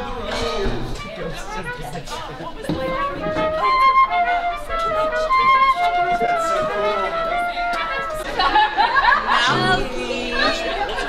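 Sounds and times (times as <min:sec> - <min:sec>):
keyboard: 0:00.0 - 0:11.0
wind instrument: 0:00.0 - 0:11.0
violin: 0:01.0 - 0:11.0.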